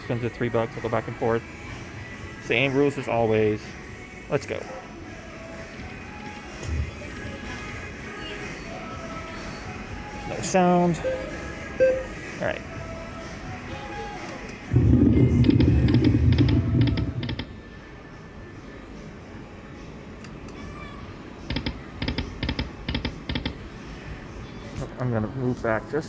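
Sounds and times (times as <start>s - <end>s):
slot machine low rumble: 11.0s - 12.1s.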